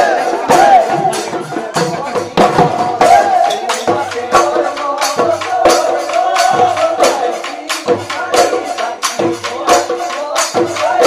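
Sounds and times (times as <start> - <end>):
drums beaten in quick rhythm: 0.0 - 11.0.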